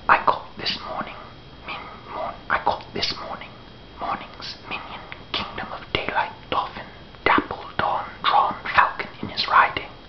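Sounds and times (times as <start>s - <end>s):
man whispering: 0.0s - 10.0s.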